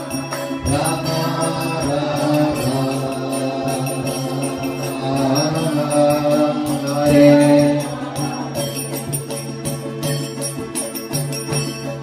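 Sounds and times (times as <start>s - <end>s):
hand drum: 0.0s - 12.0s
harmonium drone and chords: 0.0s - 12.0s
small hand cymbals: 0.0s - 12.0s
man singing a chant: 0.6s - 8.8s.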